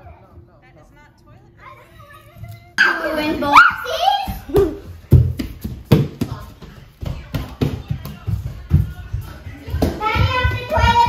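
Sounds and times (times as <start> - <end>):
children running on hardwood floor: 3.0 - 11.0.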